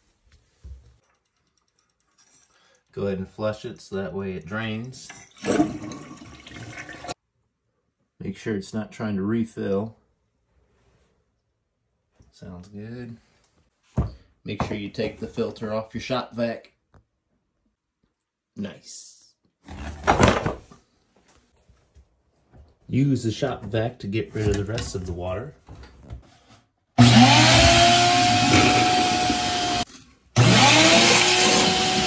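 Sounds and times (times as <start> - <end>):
toilet flushing: 5.3 - 7.2.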